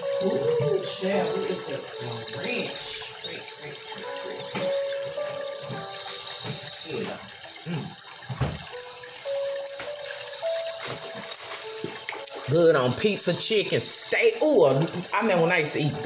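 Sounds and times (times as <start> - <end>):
background music with held notes: 0.0 - 16.0.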